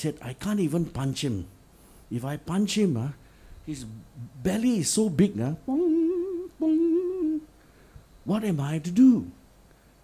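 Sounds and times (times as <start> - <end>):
man humming: 5.6 - 7.5.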